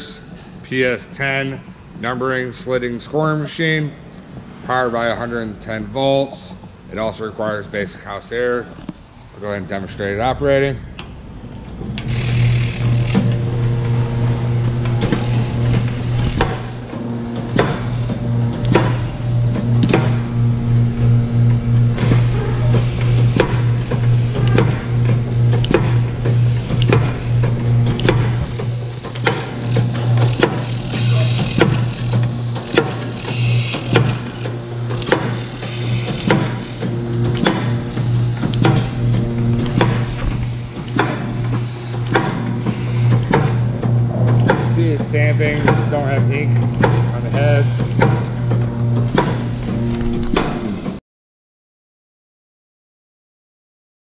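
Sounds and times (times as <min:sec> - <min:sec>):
machine motor hum: 0:11.6 - 0:51.0
sharp machine clacks: 0:12.0 - 0:13.4, 0:22.0 - 0:39.0.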